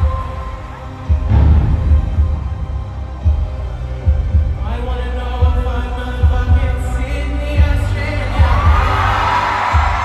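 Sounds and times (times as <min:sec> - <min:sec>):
deep bass thumps: 0:01.1 - 0:04.8.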